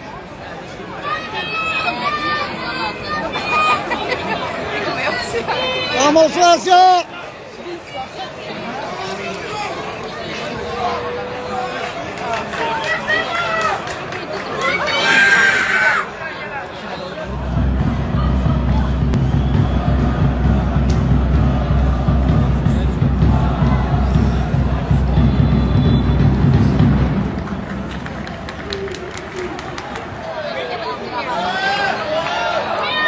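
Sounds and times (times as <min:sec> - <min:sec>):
stadium crowd voices: 0:00.0 - 0:33.0
loud deep steady rumble: 0:17.3 - 0:28.6.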